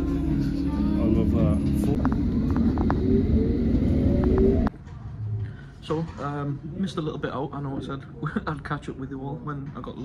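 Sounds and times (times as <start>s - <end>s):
faint rising whine: 0.0s - 5.5s.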